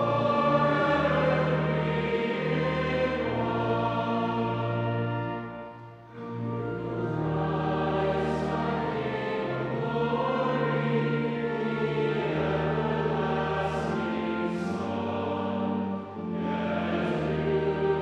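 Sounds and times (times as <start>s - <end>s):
group singing a hymn: 0.0s - 18.0s
low sustained accompaniment: 0.0s - 18.0s.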